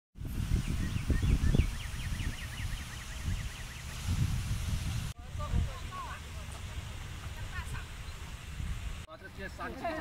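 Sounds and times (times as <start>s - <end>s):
wind rumble on microphone: 0.2s - 9.1s
small bird chirping: 0.5s - 4.0s.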